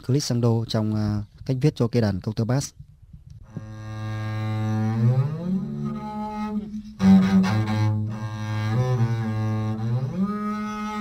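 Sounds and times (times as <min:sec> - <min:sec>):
bowed double bass glissando: 0:03.4 - 0:11.0.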